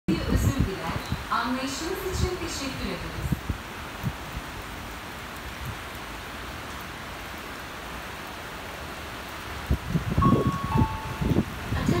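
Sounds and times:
heavy rain falling: 0:00.1 - 0:12.0.

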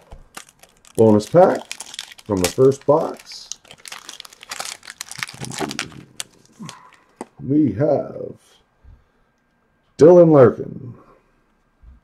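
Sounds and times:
cards rustling: 0:00.0 - 0:07.3
foil wrapper crinkling: 0:00.0 - 0:07.3.

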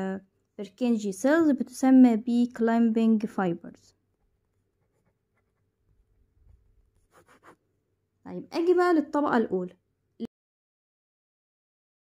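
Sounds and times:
pen scratching on paper: 0:04.7 - 0:05.8, 0:06.4 - 0:07.6.

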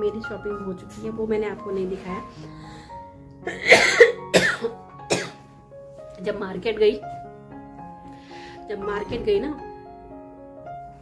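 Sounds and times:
soft background music: 0:00.0 - 0:11.0
woman coughing: 0:03.5 - 0:05.4.

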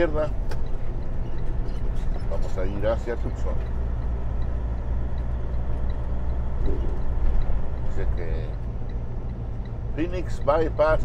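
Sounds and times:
diesel engine drone: 0:00.0 - 0:11.0
tyres on road: 0:00.0 - 0:11.0.

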